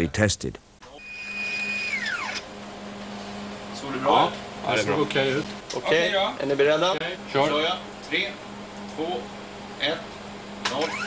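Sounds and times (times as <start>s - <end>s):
stepper motor whine: 0.8s - 5.6s, 7.0s - 11.0s.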